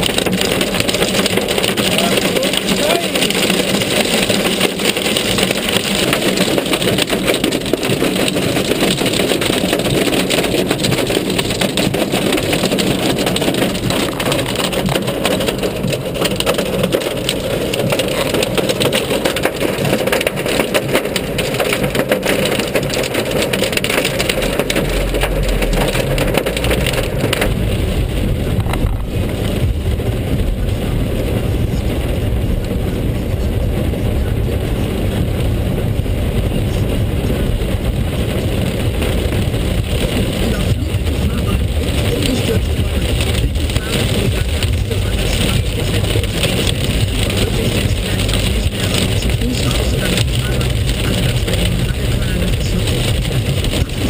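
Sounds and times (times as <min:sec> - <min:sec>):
hail and rain on car roof: 0:00.0 - 0:54.0
low rumble: 0:00.0 - 0:54.0.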